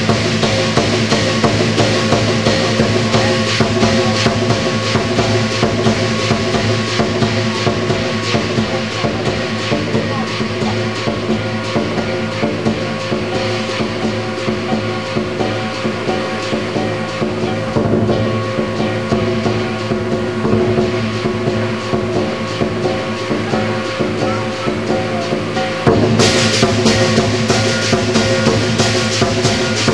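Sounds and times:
cymbals: 0.0 - 29.9
drum: 0.0 - 29.9
gong: 0.0 - 29.9.

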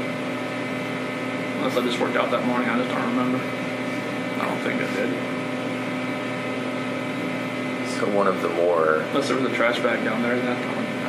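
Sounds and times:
background hum with constant tones: 0.0 - 11.0.

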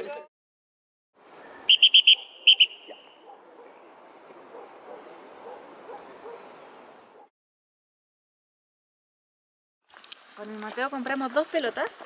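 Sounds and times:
high-pitched peeps: 1.6 - 3.2.

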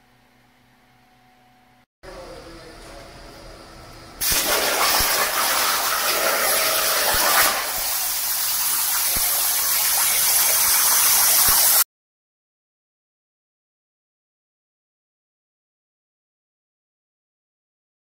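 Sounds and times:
plasma torch hissing: 4.2 - 11.8.

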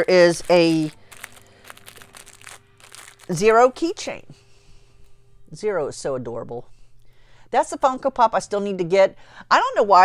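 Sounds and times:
plastic bag crinkling: 0.0 - 3.9
faint steady hum: 0.9 - 9.9.

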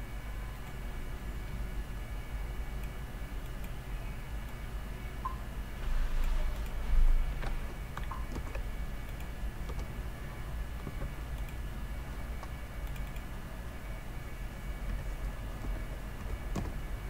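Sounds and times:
room hum and microphone hiss: 0.0 - 17.0
computer mouse clicks: 7.4 - 10.0, 10.8 - 11.6, 12.3 - 13.3, 14.9 - 16.8.

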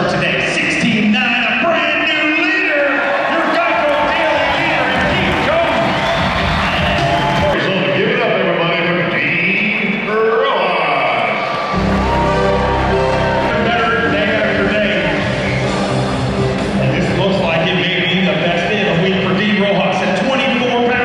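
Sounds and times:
man talking over public address: 0.0 - 11.5, 13.4 - 15.5, 16.8 - 21.0
music playing: 3.0 - 8.2, 11.4 - 21.0
heavy bass line: 11.8 - 19.4.

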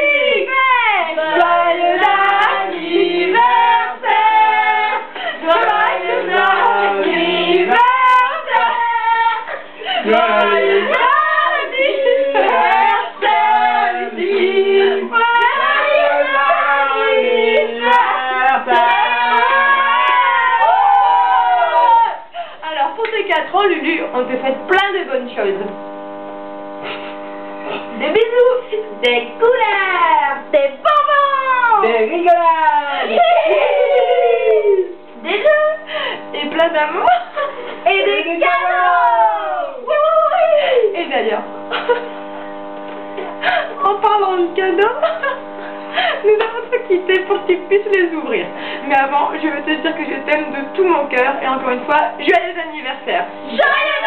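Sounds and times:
electrical hum: 0.0 - 54.0
children singing together: 1.2 - 9.2.

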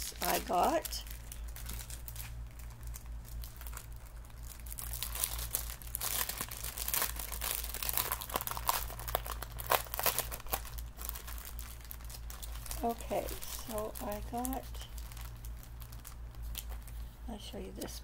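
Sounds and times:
packaging crinkling: 0.0 - 17.1
low steady hum: 0.0 - 18.0.

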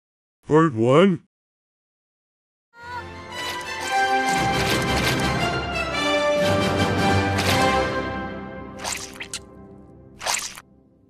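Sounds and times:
background music: 2.8 - 11.0
wet squishing cartoon effects: 8.8 - 9.5, 10.2 - 10.6.

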